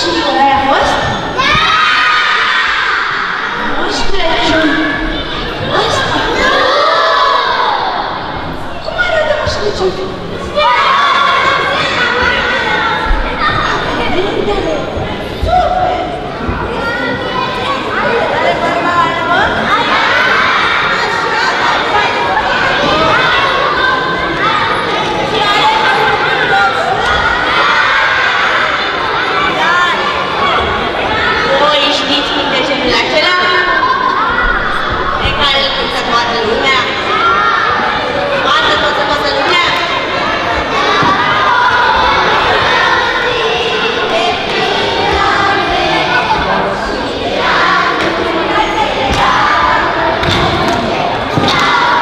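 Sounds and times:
children shouting in a hall: 0:00.0 - 0:52.0.

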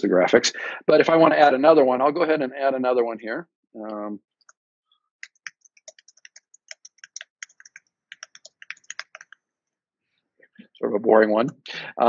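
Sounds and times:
typing on computer keyboard: 0:05.2 - 0:09.4.

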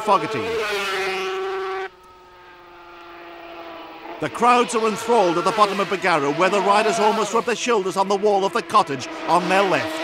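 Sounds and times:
motorcycle engine at high revs: 0:00.0 - 0:10.0.

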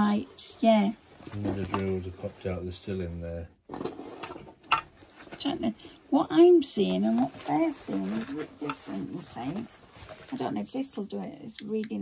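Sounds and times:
canvas rustling: 0:00.0 - 0:02.6, 0:03.8 - 0:11.2.

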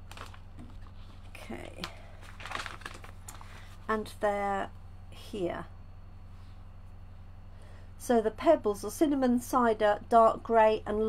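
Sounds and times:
paper pages turning: 0:00.0 - 0:03.7
low electrical hum: 0:00.0 - 0:11.0.

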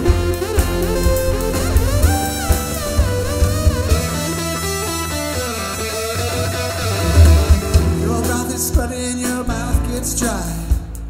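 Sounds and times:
electric guitar: 0:00.0 - 0:10.6
live rock band playing: 0:00.0 - 0:11.0.

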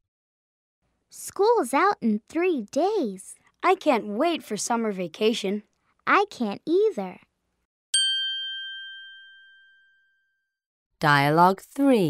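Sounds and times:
high chime ding: 0:08.0 - 0:10.5.

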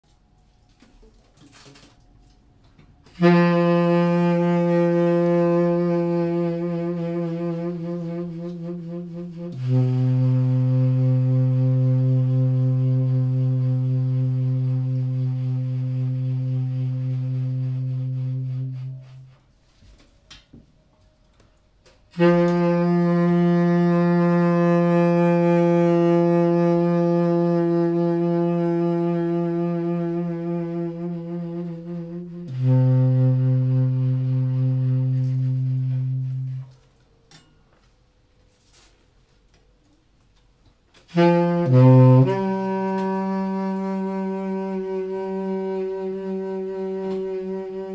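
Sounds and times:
tenor saxophone long held notes: 0:03.0 - 0:19.5, 0:21.9 - 0:37.0, 0:41.0 - 0:47.9.

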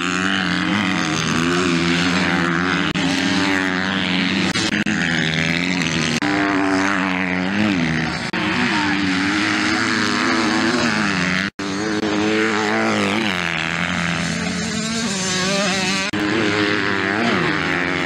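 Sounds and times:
motocross bike engines revving: 0:00.0 - 0:18.0.

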